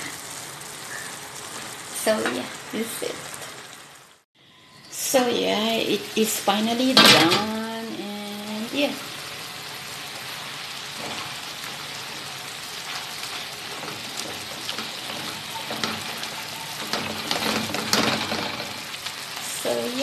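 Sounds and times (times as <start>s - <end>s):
vegetables sizzling in a wok: 0.0s - 20.0s
spatula stirring and scraping: 10.1s - 19.6s.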